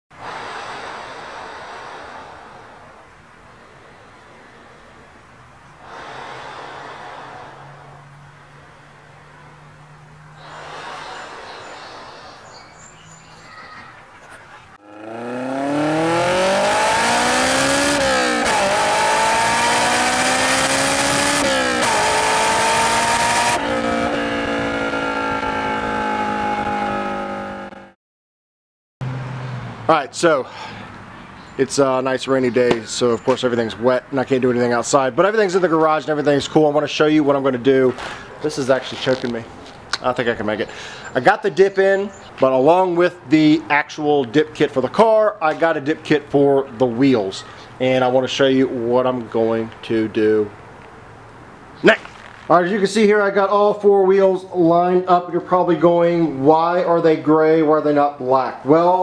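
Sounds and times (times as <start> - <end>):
rushing sound: 0.1 - 5.0, 5.8 - 9.7, 10.3 - 12.4
car engine at full throttle: 14.8 - 28.0.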